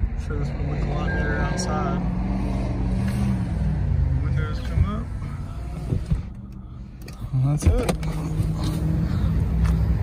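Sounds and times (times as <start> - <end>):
car engine idling: 3.0 - 10.0.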